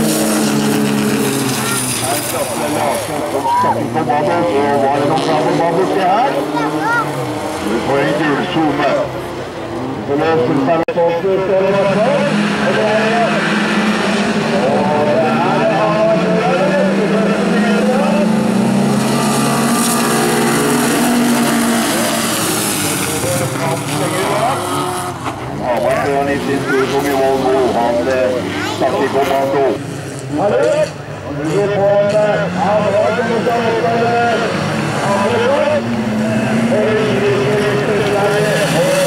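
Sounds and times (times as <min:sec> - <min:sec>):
race car engines revving: 0:00.0 - 0:39.0
man's voice: 0:01.6 - 0:09.2, 0:10.0 - 0:13.6, 0:14.4 - 0:21.0, 0:21.6 - 0:24.9, 0:25.5 - 0:39.0.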